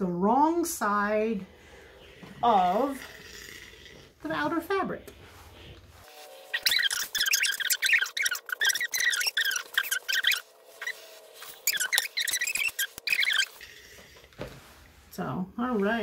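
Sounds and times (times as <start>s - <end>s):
steam iron squeaking on fabric: 2.0s - 4.6s, 5.3s - 15.2s.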